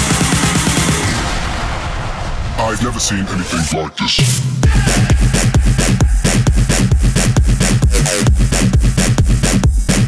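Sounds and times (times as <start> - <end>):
sampled spoken voice: 2.6 - 5.3.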